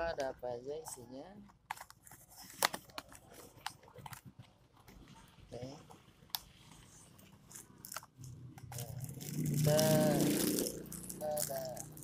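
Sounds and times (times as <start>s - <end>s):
plastic wrap and cardboard crinkling: 6.5s - 12.0s.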